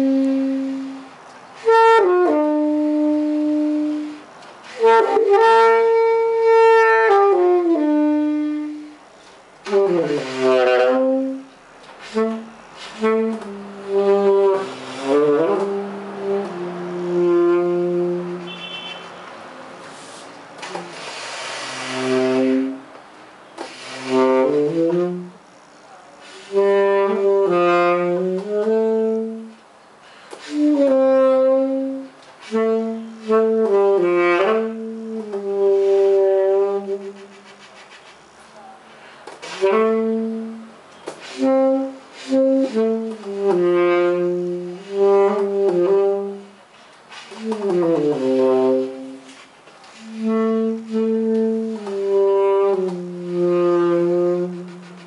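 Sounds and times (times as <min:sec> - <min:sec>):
tenor saxophone melody: 0:00.0 - 0:25.6, 0:26.2 - 0:55.0.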